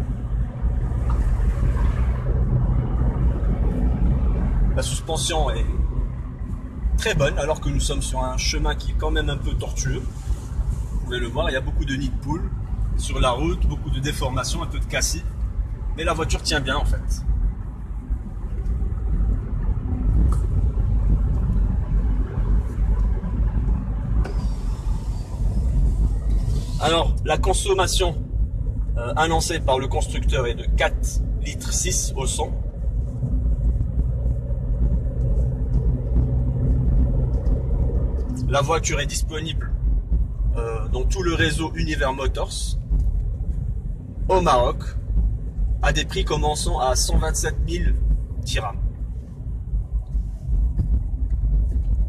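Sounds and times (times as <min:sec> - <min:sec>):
car engine under load: 0:00.0 - 0:52.0
road noise on rough track: 0:00.0 - 0:52.0
tyre and suspension noise: 0:16.7 - 0:52.0.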